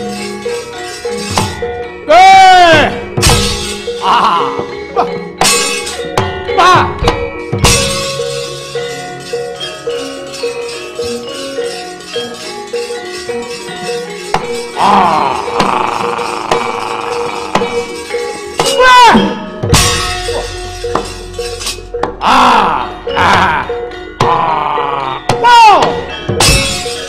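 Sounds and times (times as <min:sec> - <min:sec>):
sharp metallic clashes: 0:00.0 - 0:04.3, 0:05.4 - 0:06.4, 0:07.1 - 0:27.0
gamelan playing: 0:00.0 - 0:27.0
loud voice crying out: 0:14.8 - 0:17.6, 0:22.2 - 0:25.9.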